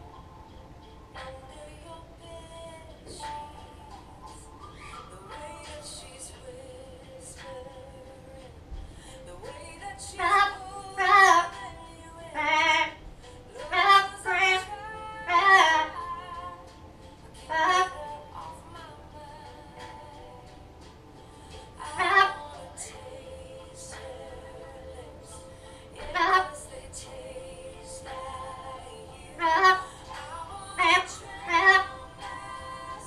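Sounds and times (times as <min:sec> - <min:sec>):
parrot singing wavering notes: 0:00.0 - 0:06.2, 0:10.1 - 0:33.0
faint music: 0:00.0 - 0:33.0.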